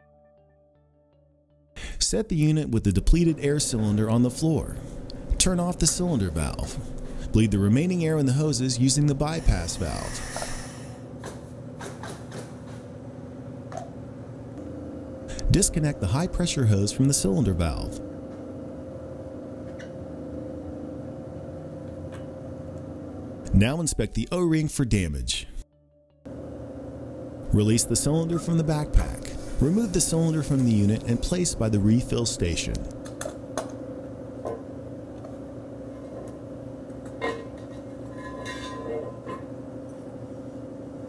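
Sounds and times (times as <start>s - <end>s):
low hum: 1.8s - 11.6s
steady low hum: 1.8s - 41.0s.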